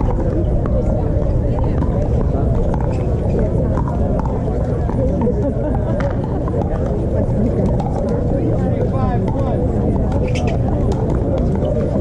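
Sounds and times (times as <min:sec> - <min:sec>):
players' voices: 0:00.0 - 0:12.0
steady low rumble: 0:00.0 - 0:12.0.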